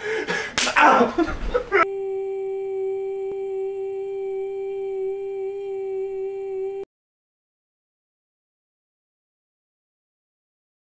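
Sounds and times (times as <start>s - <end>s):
steady electronic test tone: 1.8s - 6.9s.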